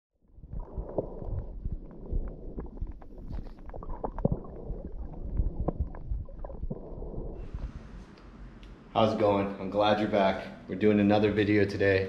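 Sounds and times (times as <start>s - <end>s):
underwater clicks and crackles: 0.2s - 8.2s
underwater rumble: 0.2s - 8.6s.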